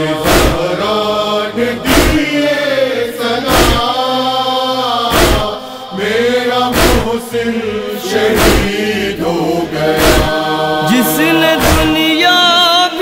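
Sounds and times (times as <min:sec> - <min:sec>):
chorus chanting: 0:00.0 - 0:13.0
heavy beat: 0:00.3 - 0:00.8, 0:01.9 - 0:02.3, 0:10.0 - 0:10.4, 0:11.2 - 0:12.2.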